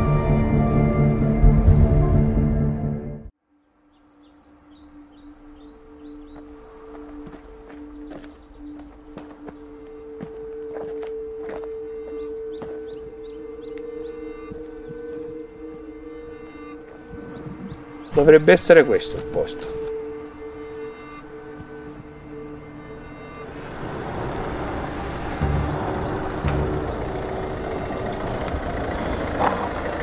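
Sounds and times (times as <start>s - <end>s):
low soundtrack drone: 0.0s - 3.3s, 4.2s - 30.0s
footsteps on dirt track: 6.2s - 13.1s.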